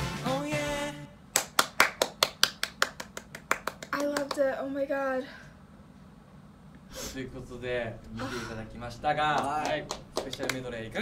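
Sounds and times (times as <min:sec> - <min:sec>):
person singing pop vocal: 0:00.0 - 0:01.2
person clapping hands: 0:01.3 - 0:04.5, 0:09.3 - 0:10.7.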